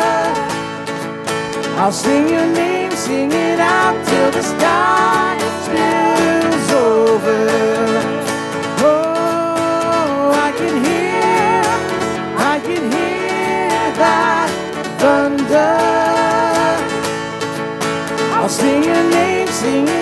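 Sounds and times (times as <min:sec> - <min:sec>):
man and woman singing: 0:00.0 - 0:00.9, 0:01.6 - 0:17.3, 0:18.2 - 0:20.0
keyboard: 0:00.0 - 0:20.0
strummed acoustic guitar: 0:00.0 - 0:20.0.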